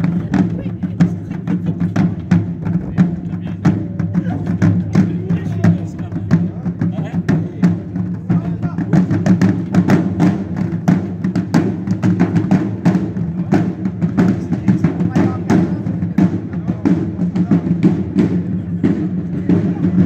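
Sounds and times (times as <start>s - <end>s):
marching field drums: 0.0s - 20.0s.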